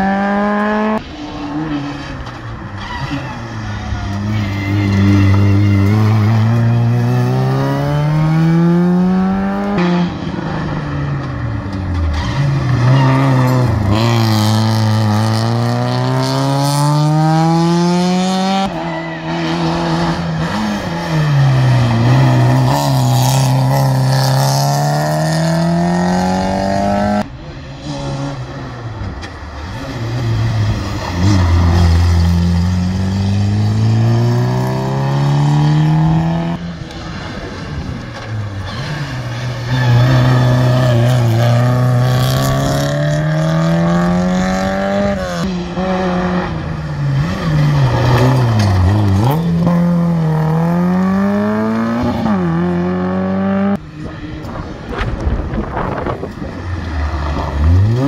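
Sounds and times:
rally car engines braking and accelerating: 0:00.0 - 0:58.0.

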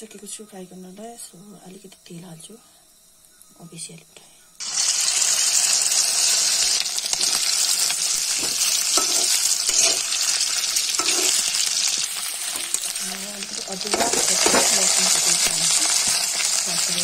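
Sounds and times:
chicken sizzling in hot oil: 0:04.6 - 0:17.0
metal spatula scraping pan: 0:08.3 - 0:13.0, 0:13.9 - 0:15.0.

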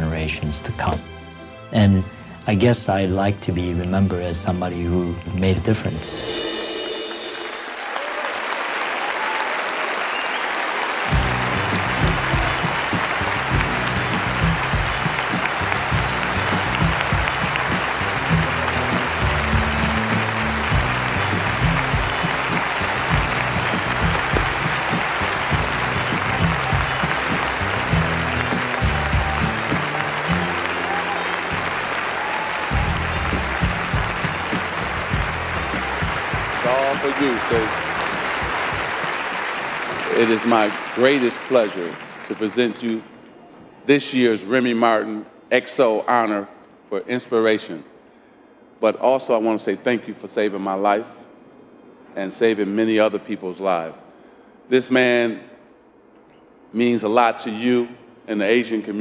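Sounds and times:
audience applause: 0:06.4 - 0:43.2
band music with bass line: 0:11.1 - 0:31.8, 0:32.8 - 0:38.8.

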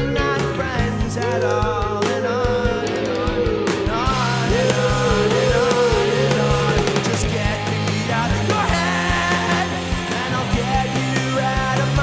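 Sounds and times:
rock band playing live: 0:00.0 - 0:12.0.

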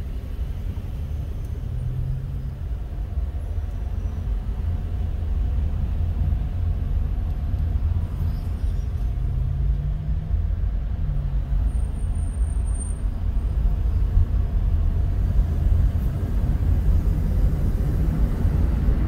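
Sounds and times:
car engine and tyre rumble: 0:00.0 - 0:19.0.

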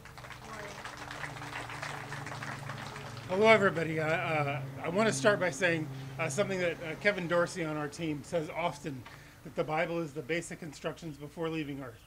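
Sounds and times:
small crowd clapping: 0:00.0 - 0:04.4.

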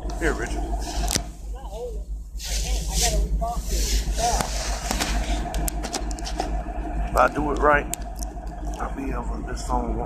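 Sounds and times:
indistinct voices: 0:00.0 - 0:10.0
steady low rumble: 0:00.0 - 0:10.0.

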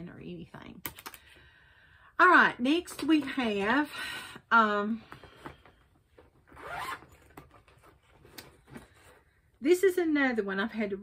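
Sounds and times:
handling clicks and rustling: 0:05.1 - 0:09.2.

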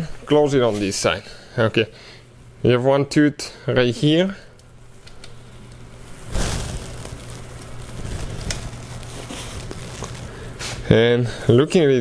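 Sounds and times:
steady low hum: 0:00.0 - 0:12.0
plastic cap rustling and crackling: 0:05.1 - 0:10.8.

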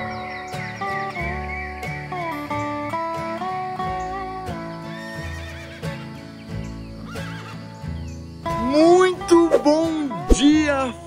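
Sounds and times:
country music: 0:00.0 - 0:11.0
horse whinnying: 0:04.9 - 0:06.2, 0:07.1 - 0:07.7.

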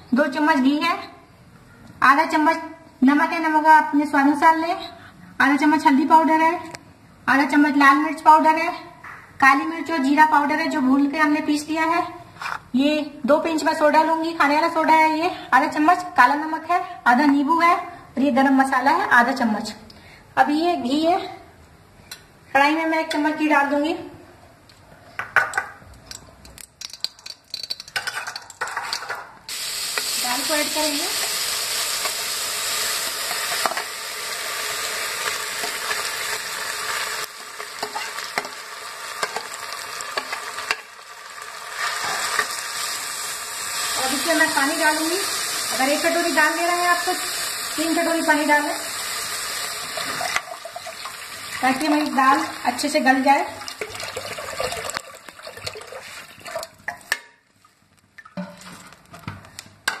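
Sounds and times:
sharp pops and crackles: 0:26.0 - 0:28.7
lentils sizzling in hot fat: 0:26.8 - 0:56.4
water pouring from a jug: 0:53.6 - 0:56.8.

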